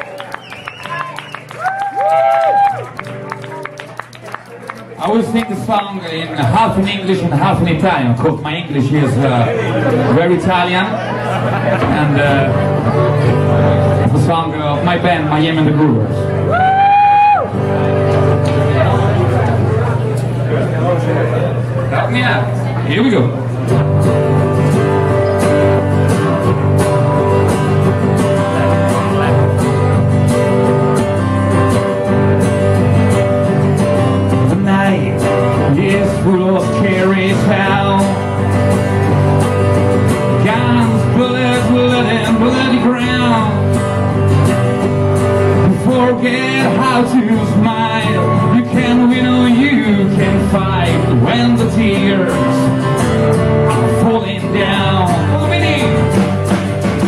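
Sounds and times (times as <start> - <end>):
strummed acoustic guitar: 5.0 - 16.5, 17.4 - 57.0
man singing: 34.3 - 38.6, 40.3 - 43.8, 45.5 - 53.0, 53.6 - 56.2.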